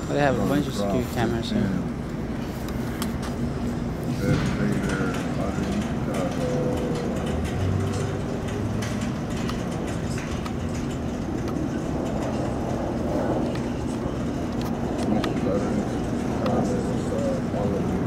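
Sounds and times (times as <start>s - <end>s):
faint indistinct voices: 0.0s - 18.0s
street traffic rumble: 0.0s - 18.0s.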